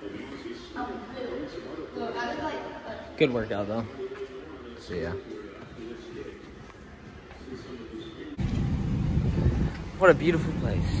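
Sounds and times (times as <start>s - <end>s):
low outdoor rumble: 8.4s - 11.0s.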